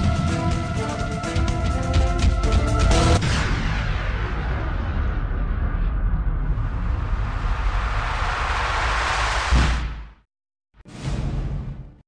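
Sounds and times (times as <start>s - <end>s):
rushing rumbling sound effect: 2.8s - 10.2s.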